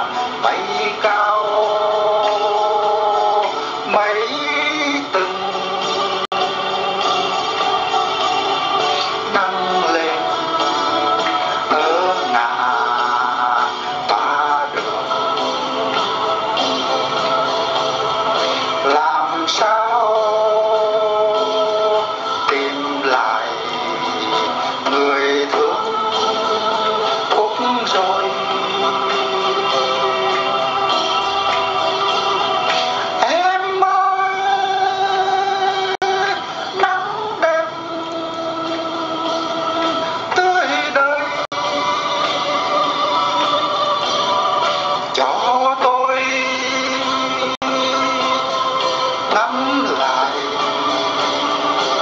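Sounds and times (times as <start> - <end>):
instrumental accompaniment: 0.0 - 52.0
person singing long held notes: 0.0 - 52.0.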